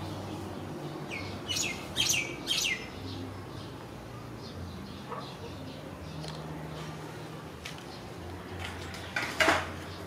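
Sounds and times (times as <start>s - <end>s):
small bird chirping: 1.0s - 3.7s.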